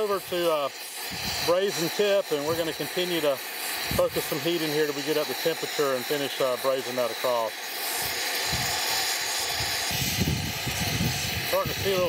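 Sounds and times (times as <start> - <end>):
torch flame hissing: 0.0 - 12.0.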